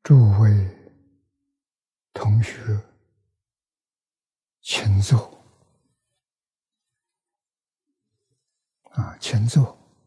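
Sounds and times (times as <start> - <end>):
elderly man speaking: 0.0 - 0.9, 4.6 - 5.4, 8.9 - 9.8.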